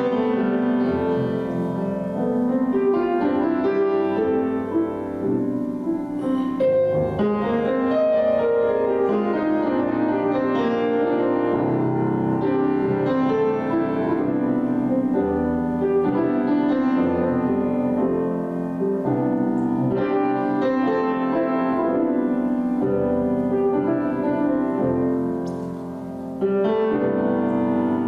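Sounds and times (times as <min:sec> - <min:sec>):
grand piano chords: 0:00.0 - 0:28.0.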